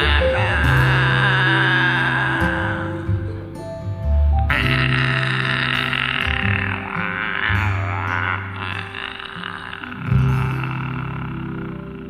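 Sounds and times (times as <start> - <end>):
man singing with vibrato: 0.0 - 3.7, 4.4 - 12.0
karaoke backing music: 0.0 - 12.0.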